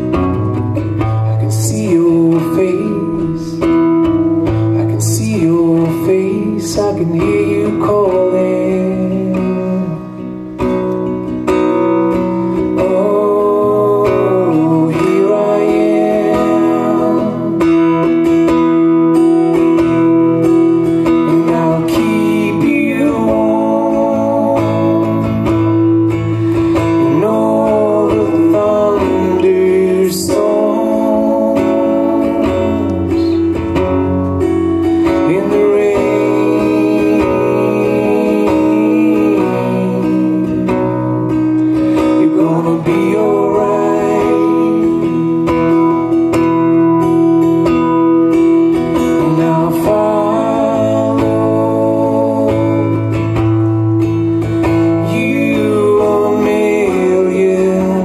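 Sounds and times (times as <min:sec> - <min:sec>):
acoustic guitar strumming: 0:00.0 - 0:58.0
person singing: 0:00.0 - 0:58.0.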